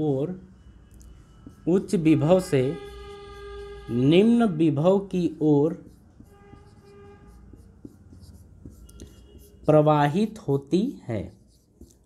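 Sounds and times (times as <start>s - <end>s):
marker scratching on whiteboard: 1.2s - 12.0s.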